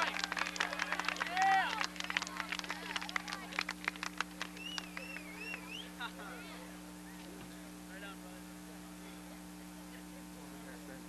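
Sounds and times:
applause: 0.0s - 5.8s
low electrical hum: 0.0s - 11.0s.

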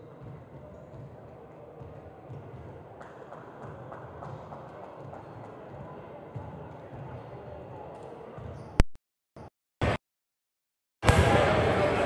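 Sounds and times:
faint indistinct voices: 0.0s - 8.8s, 11.1s - 12.0s.

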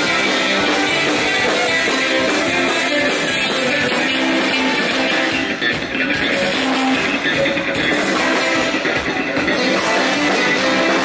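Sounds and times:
folk band playing dance music: 0.0s - 11.0s.

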